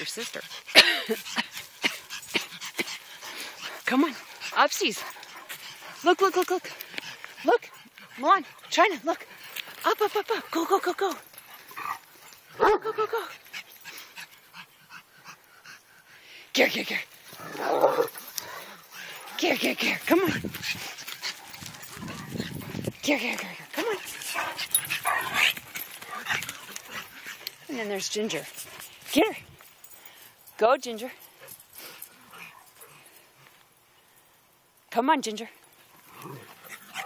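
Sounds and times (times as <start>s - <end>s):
dogs breathing hard: 0.0s - 12.6s, 13.2s - 34.6s, 35.7s - 37.0s.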